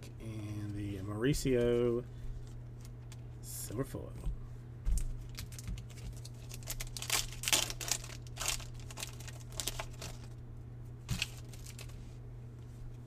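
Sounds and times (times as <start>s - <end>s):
steady low hum: 0.0s - 13.0s
foil wrapper crinkling and tearing: 5.0s - 10.4s, 11.1s - 12.0s.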